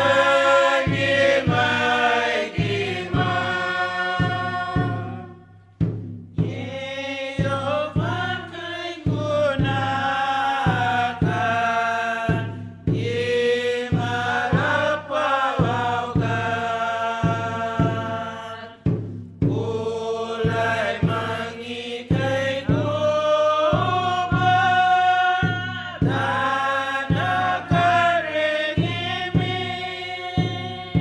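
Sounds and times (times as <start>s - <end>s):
group singing a chant-like hymn: 0.0s - 31.0s
steady percussive beat: 0.0s - 31.0s.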